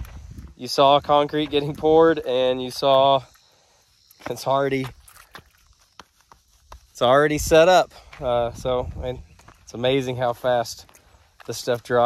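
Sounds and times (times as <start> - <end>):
footsteps on dirt and gravel: 0.0 - 12.0.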